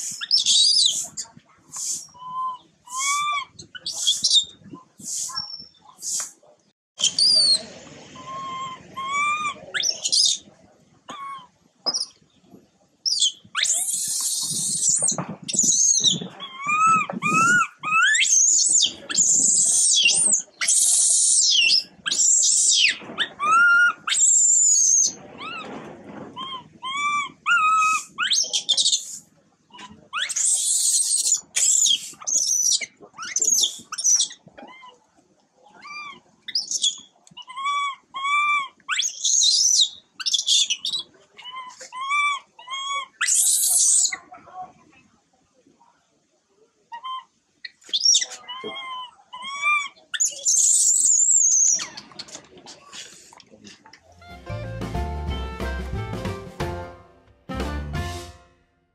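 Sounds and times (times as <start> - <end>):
baby monkey screaming: 2.0 - 4.5, 7.0 - 7.6, 8.2 - 10.4, 13.1 - 25.8, 26.4 - 29.1, 29.7 - 35.0, 35.8 - 44.2, 47.9 - 52.1
baby monkey whimper calls: 2.0 - 4.6, 8.2 - 10.4, 13.1 - 25.7, 26.4 - 29.0, 35.8 - 44.2, 47.9 - 52.1.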